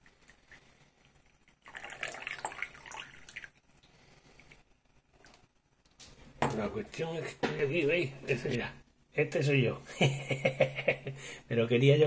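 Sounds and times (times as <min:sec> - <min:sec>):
tea pouring into a cup: 0:00.0 - 0:04.6.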